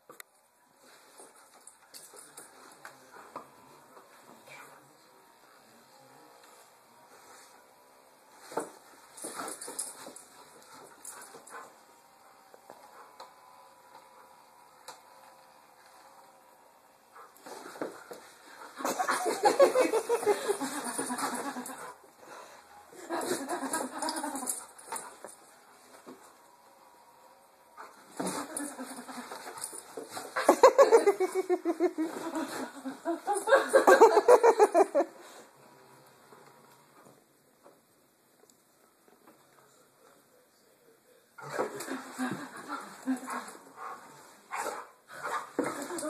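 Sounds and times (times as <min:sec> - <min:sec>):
person laughing: 0:30.4 - 0:35.1.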